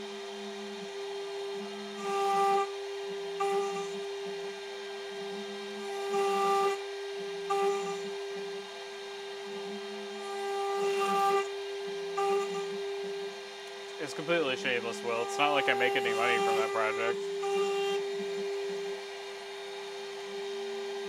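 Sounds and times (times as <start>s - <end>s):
end mill cutting plywood: 0.0s - 21.0s
router spindle whine: 0.0s - 21.0s.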